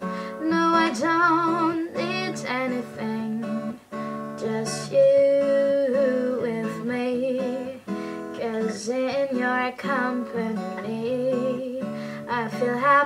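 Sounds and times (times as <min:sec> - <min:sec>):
strummed acoustic guitar: 0:00.0 - 0:13.0
woman singing: 0:00.0 - 0:13.0.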